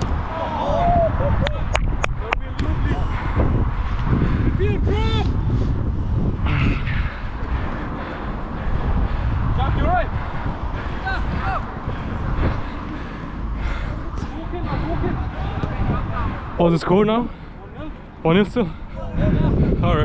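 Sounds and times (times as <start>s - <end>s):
wind rumble on microphone: 0.0s - 20.0s
distant men shouting: 0.2s - 1.7s, 9.6s - 16.6s.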